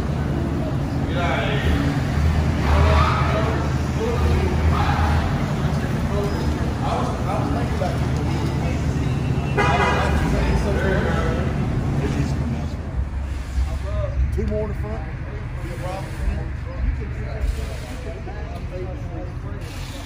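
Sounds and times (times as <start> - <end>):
background voices talking: 0.0 - 20.0.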